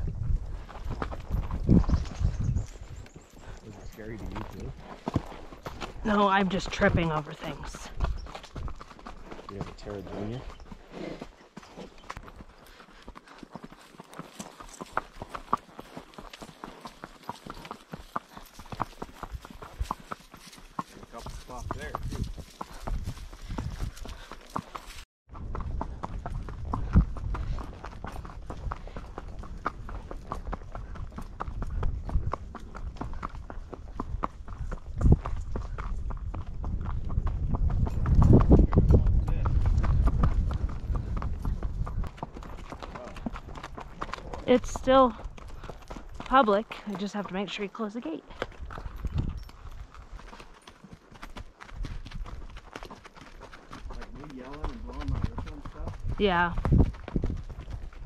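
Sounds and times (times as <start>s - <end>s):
horse hooves clip-clopping on dirt: 0.0s - 58.0s.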